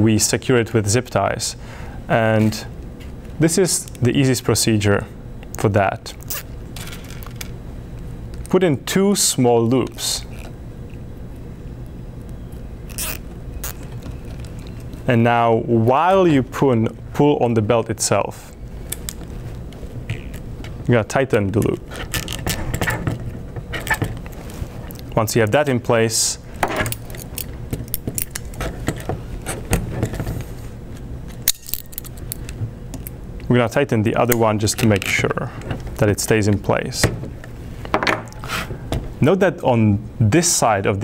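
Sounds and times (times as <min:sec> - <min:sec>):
steady low hum: 0:00.0 - 0:41.0
plastic zip ties rustling: 0:12.9 - 0:15.0.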